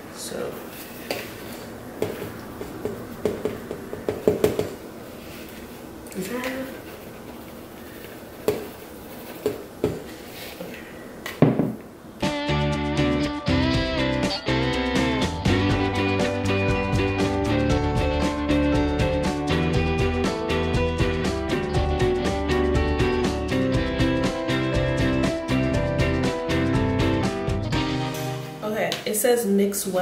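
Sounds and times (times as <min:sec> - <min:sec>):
knocks of mixing bowls: 0:02.0 - 0:04.8, 0:11.4 - 0:11.8
guitar background music: 0:12.2 - 0:28.6.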